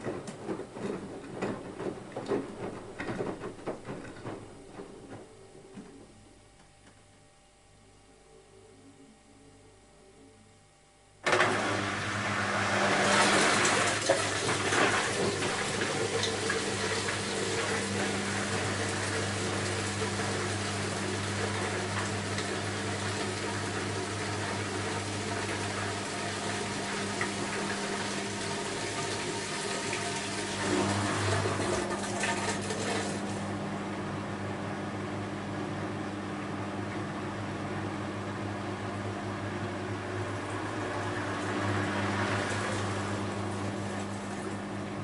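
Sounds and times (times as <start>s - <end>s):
water sloshing in washing machine: 0.0s - 5.7s, 11.3s - 33.6s, 39.6s - 45.0s
washing machine hum: 0.0s - 8.6s, 11.0s - 45.0s.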